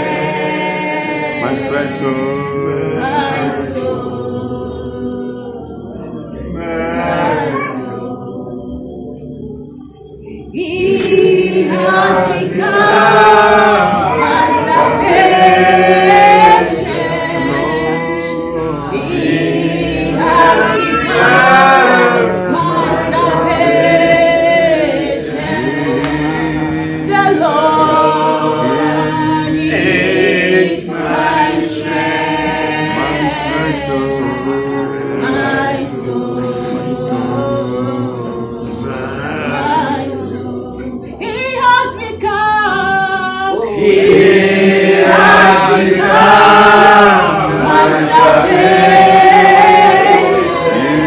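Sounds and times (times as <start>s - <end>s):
woman and group singing gospel: 0.0s - 51.0s.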